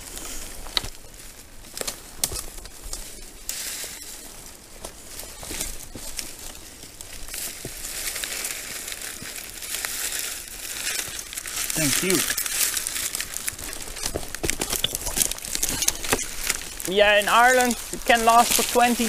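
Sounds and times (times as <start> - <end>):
dry reed rustling and crackling: 0.0 - 19.0.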